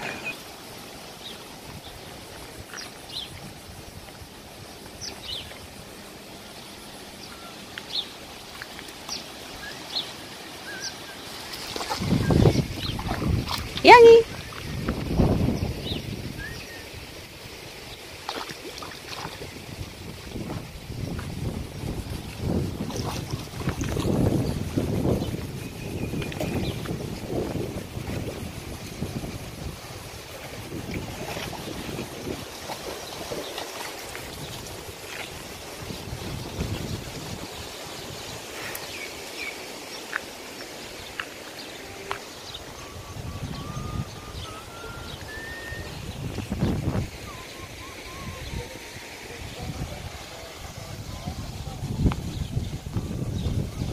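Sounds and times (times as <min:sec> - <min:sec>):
wind buffeting microphone: 0:11.8 - 0:17.1, 0:19.1 - 0:38.6, 0:42.4 - 0:53.9.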